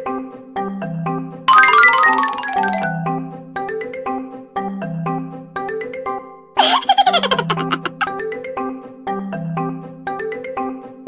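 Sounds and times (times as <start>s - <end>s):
light marimba music: 1.5s - 3.4s
high-pitched giggling laughter: 6.6s - 8.1s.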